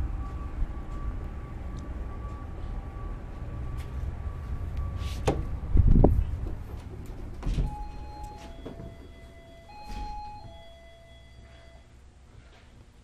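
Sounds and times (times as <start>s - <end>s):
two-note door chime: 7.6s - 11.9s.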